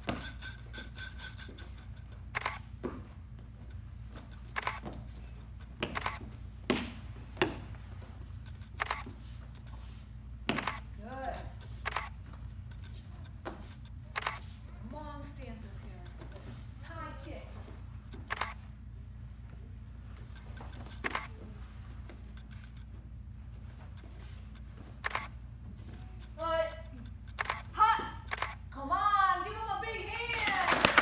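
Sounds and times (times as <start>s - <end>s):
low room hum: 0.0s - 31.0s.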